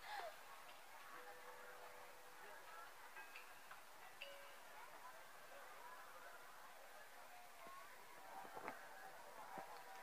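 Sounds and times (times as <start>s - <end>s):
faint distant crowd voices: 0.0s - 10.0s.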